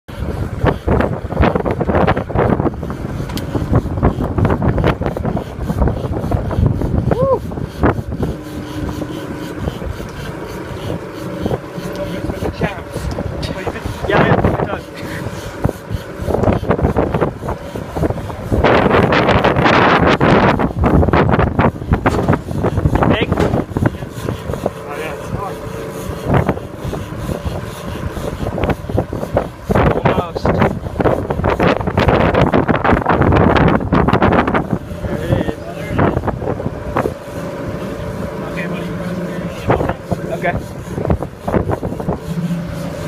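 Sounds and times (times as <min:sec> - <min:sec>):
outboard motors running: 0:00.0 - 0:43.0
rushing wake water: 0:00.1 - 0:43.0
wind buffeting microphone: 0:00.1 - 0:43.0
indistinct voices: 0:22.6 - 0:31.7.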